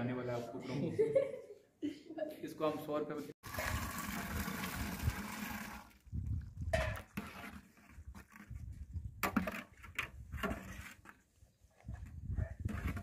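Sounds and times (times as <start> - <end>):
liquid pouring into metal pot: 3.4 - 6.1.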